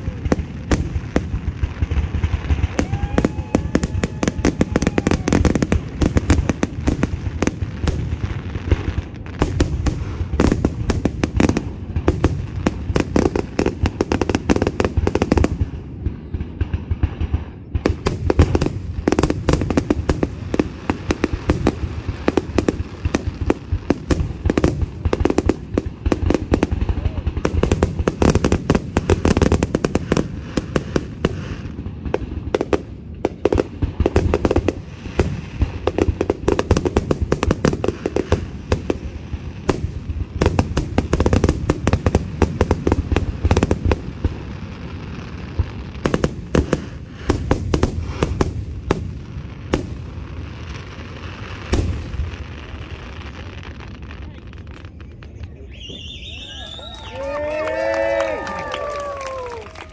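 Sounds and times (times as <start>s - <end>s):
fireworks bursting and crackling: 0.0s - 59.9s.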